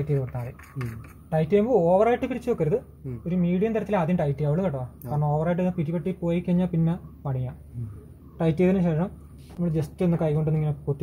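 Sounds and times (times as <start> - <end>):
person talking: 3.0 - 3.4.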